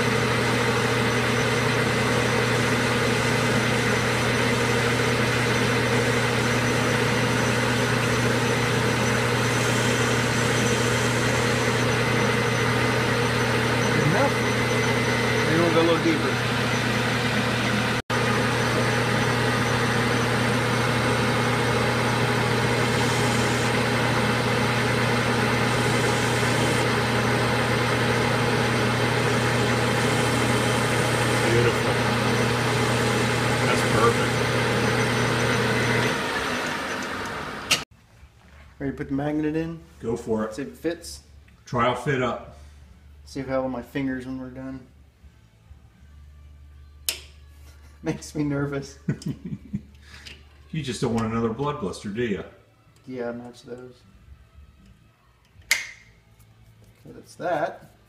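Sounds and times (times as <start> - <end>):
lathe tool cutting metal: 0.0 - 37.8
metal lathe running: 0.0 - 37.8.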